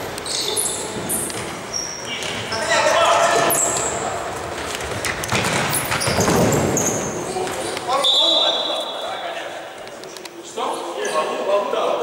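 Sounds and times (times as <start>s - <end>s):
shoes squeaking on court: 0.0s - 8.5s
ball kicked and bouncing: 4.8s - 7.7s
referee's whistle blast: 8.0s - 8.9s.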